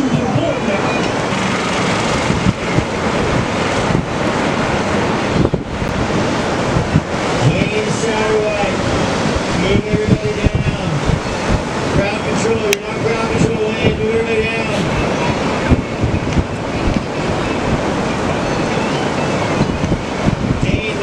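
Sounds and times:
ocean surf breaking: 0.0 - 21.0
wind buffeting microphone: 0.0 - 21.0.

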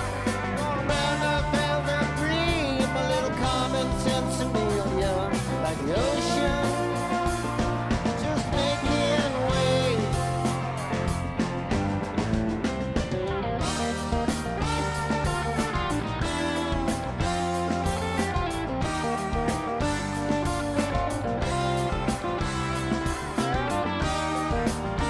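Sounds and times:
electric guitar lead with bends: 0.0 - 25.0
steady drum beat: 0.0 - 25.0.

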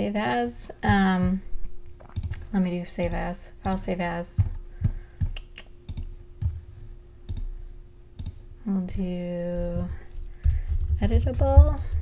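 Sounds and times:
computer mouse clicks: 2.0 - 2.4, 5.3 - 6.1, 7.3 - 7.5, 8.2 - 8.4.

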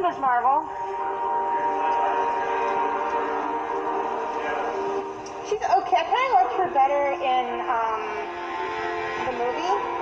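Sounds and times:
sustained chord of steady tones: 0.0 - 10.0.

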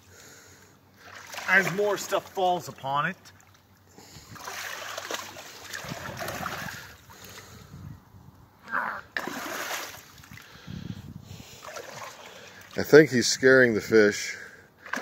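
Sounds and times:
water and mud splashing and squelching: 1.0 - 7.6, 9.1 - 13.3, 14.8 - 15.0.

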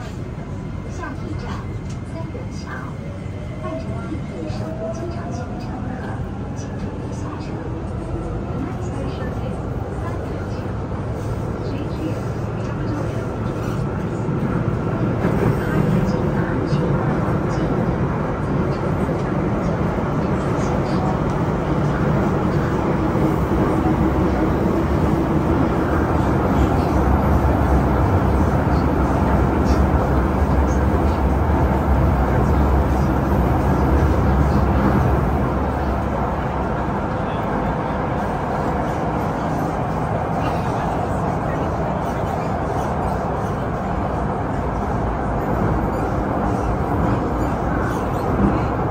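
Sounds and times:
train wheels rumbling on track: 0.0 - 48.9.

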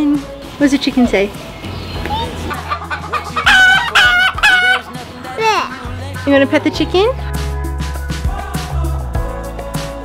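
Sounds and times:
hen squawking: 2.5 - 6.1.

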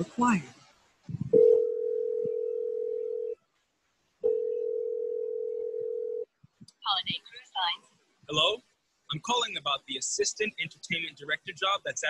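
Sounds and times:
telephone ringback tone: 1.3 - 3.4, 4.2 - 6.2.

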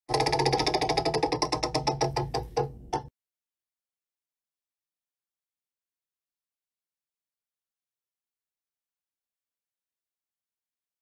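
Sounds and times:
prize wheel ticking: 0.1 - 2.6.

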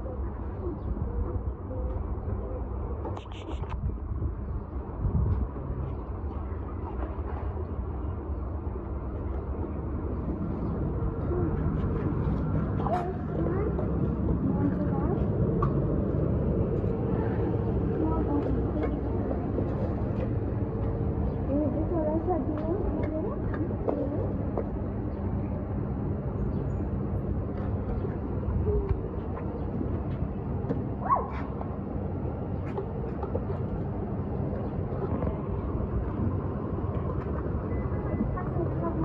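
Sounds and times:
faint scattered voices: 0.0 - 3.8, 9.4 - 31.6, 32.4 - 39.0
constant hum: 0.0 - 39.0
low mechanical rumble: 0.0 - 39.0.

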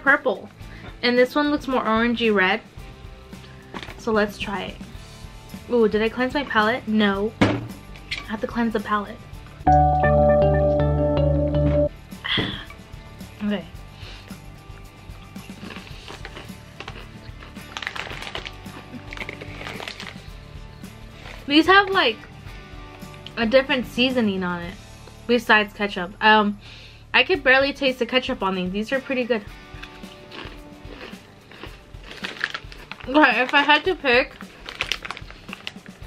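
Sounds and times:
quiet background music: 0.0 - 36.0
potato chips being crunched: 15.5 - 20.4, 29.8 - 36.0.

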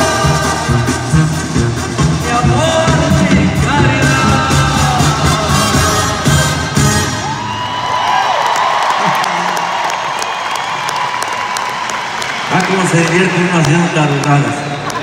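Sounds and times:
live band music: 0.0 - 7.8
arena crowd cheering and whooping: 7.1 - 15.0.

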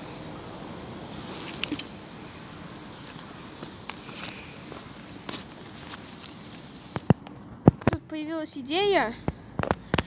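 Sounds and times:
steady hiss: 0.0 - 7.9
footsteps walking: 3.0 - 7.8.

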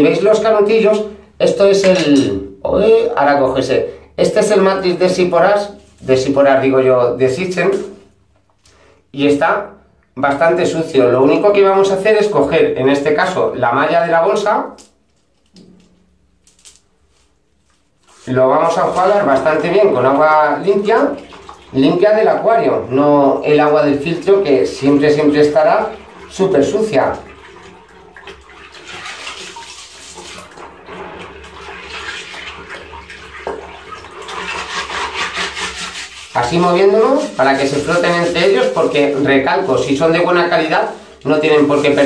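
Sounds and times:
water sloshing in a basin: 14.7 - 42.0.

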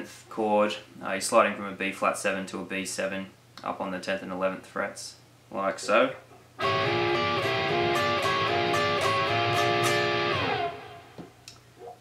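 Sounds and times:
electric guitar chord picked: 6.6 - 11.2.

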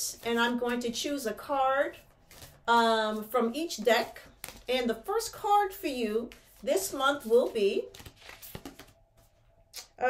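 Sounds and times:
cards clicking and rustling: 4.3 - 4.8, 7.9 - 9.0.

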